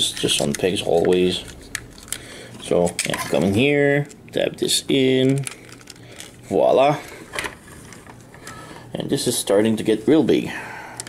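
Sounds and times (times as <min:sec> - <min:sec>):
plastic parts rubbing and ticking: 0:00.0 - 0:04.4, 0:05.2 - 0:06.4.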